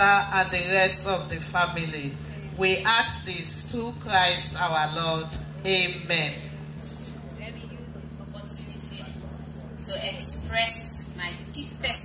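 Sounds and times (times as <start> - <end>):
public address system hum: 0.0 - 12.0.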